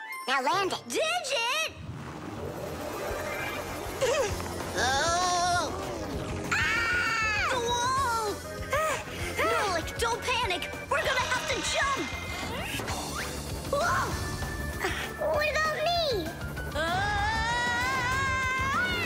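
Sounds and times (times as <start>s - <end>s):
cartoon background music: 0.0s - 1.8s, 2.6s - 19.0s.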